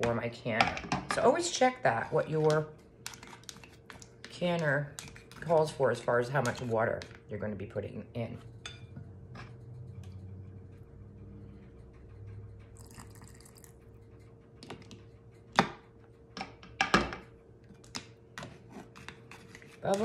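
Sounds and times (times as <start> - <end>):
liquid sloshing: 12.8 - 13.8.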